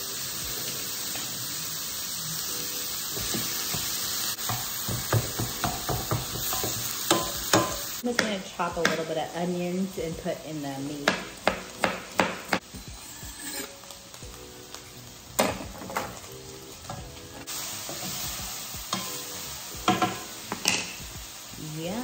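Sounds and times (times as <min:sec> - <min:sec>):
meat sizzling in a skillet: 0:00.0 - 0:22.0
wooden spoon knocking on pan: 0:03.2 - 0:09.1, 0:11.0 - 0:12.6, 0:19.8 - 0:20.9
knife chopping onion on board: 0:11.0 - 0:12.6.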